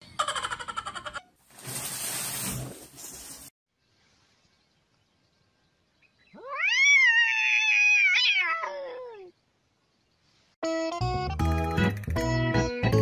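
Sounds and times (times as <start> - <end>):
cat yowling: 6.4 - 9.3.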